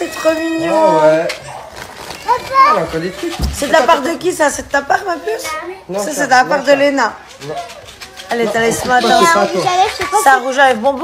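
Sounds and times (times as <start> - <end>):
people exclaiming and talking: 0.0 - 11.0
child talking: 2.2 - 3.0, 5.4 - 5.9, 9.0 - 10.4.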